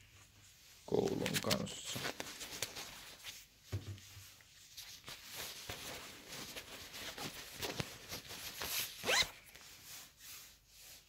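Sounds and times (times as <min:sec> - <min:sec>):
zipper rasp: 0:09.0 - 0:09.4.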